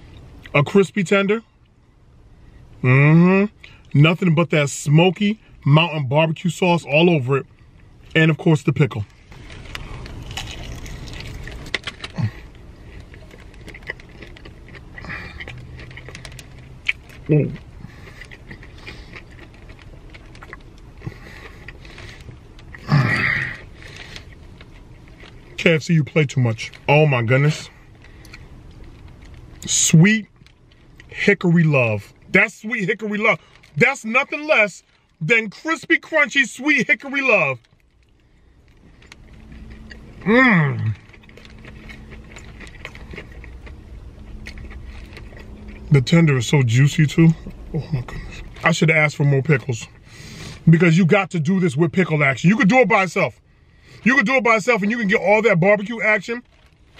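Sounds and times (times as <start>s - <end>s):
faint steady hum: 0.0s - 56.9s
chewing and crunching crispy food: 2.9s - 56.9s.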